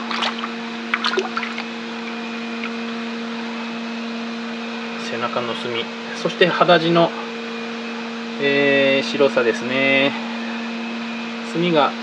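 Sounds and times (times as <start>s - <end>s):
steady water noise: 0.0s - 1.8s
water splashing in a tub: 0.0s - 1.8s
constant low hum: 0.0s - 12.0s.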